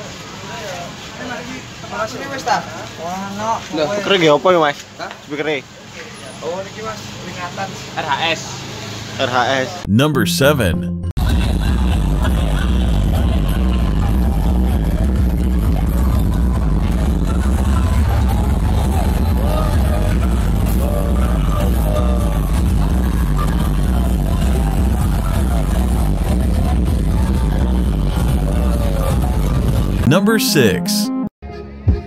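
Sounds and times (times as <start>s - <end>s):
loud electronic dance music: 9.9s - 11.1s, 30.1s - 31.3s.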